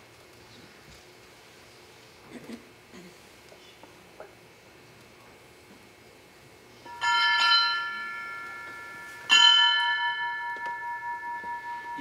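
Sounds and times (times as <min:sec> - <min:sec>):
small hand bell ringing: 0:06.9 - 0:12.0.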